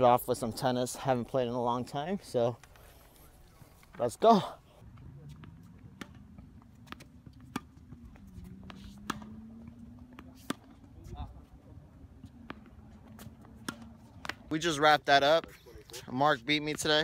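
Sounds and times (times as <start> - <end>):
tennis balls struck and bouncing: 4.8 - 15.6.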